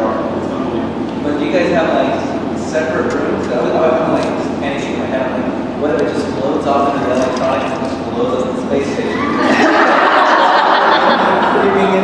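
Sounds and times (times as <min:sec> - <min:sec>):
man talking: 0:00.0 - 0:09.4, 0:11.0 - 0:12.0.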